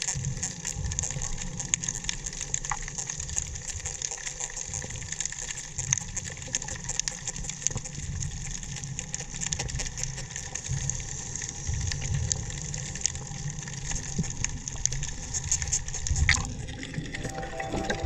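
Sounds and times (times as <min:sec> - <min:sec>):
crackle of short clicks underwater: 0:00.0 - 0:16.6.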